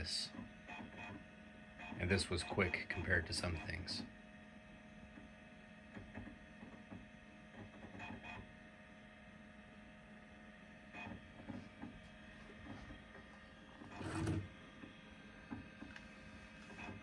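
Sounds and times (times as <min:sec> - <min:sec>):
computer hum: 0:00.0 - 0:17.0.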